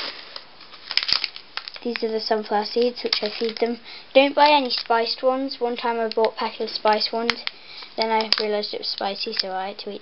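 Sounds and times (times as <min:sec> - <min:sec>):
plastic bags crinkling: 0:00.0 - 0:09.7.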